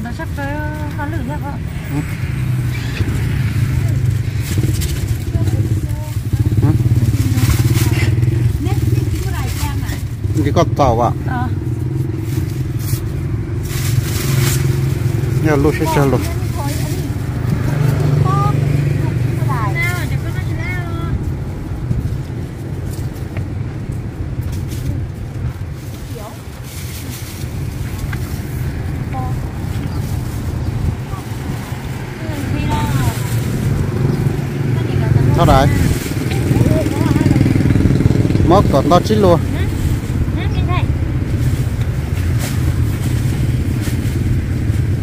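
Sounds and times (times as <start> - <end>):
people talking: 0.0 - 2.1, 5.2 - 8.0, 15.4 - 21.2, 26.1 - 26.4, 29.1 - 30.0, 32.2 - 33.3, 34.7 - 37.6, 38.4 - 40.9
low rumble of vehicle engines: 0.0 - 45.0.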